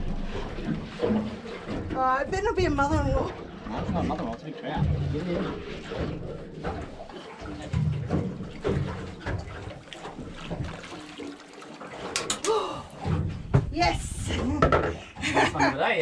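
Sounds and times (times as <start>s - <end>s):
fish knocking on plastic cooler lid: 14.6s - 15.0s.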